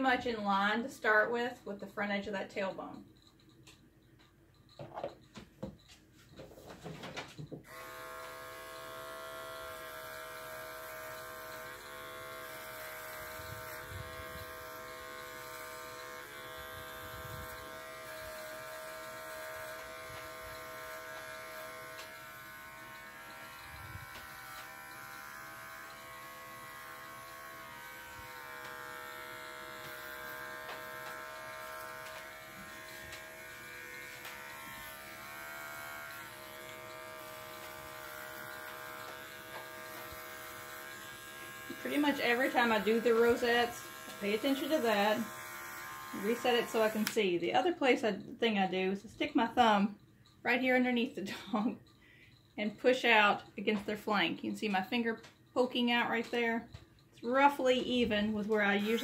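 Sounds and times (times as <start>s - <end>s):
electric clippers running: 7.6s - 47.2s, 58.6s - 59.0s.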